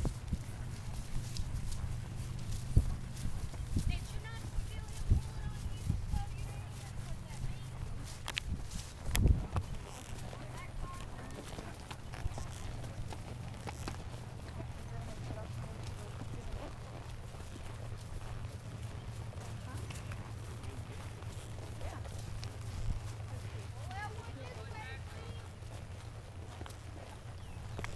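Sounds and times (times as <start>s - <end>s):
hooves clopping on dirt track: 0.0s - 27.9s
riders' voices: 0.0s - 27.9s.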